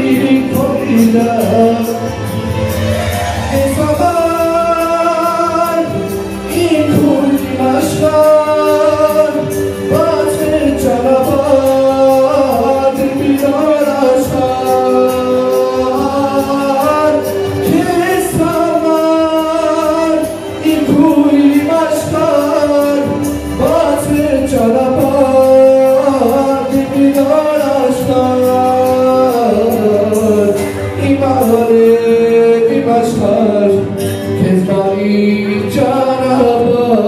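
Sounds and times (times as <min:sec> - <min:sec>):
instrumental accompaniment with beat: 0:00.0 - 0:37.0
man singing into microphone: 0:00.0 - 0:37.0.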